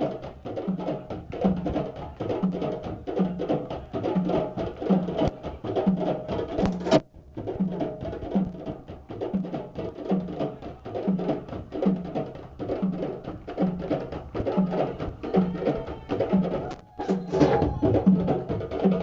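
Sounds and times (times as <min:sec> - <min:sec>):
djembe drumming: 0:00.0 - 0:19.0.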